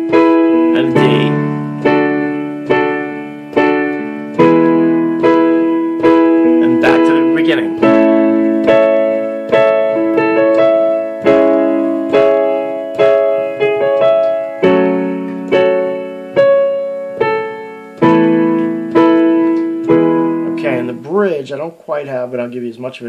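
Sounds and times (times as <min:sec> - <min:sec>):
piano block chords: 0:00.0 - 0:22.5.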